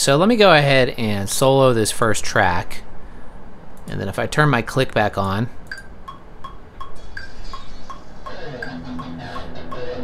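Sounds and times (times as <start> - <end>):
metronome clicks: 5.7 - 10.0
electric guitar playing: 8.1 - 10.0.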